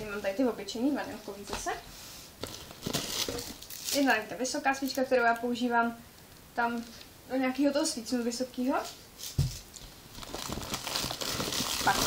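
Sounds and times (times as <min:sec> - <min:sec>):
plastic bags rustling: 0:00.0 - 0:05.0, 0:08.8 - 0:12.0.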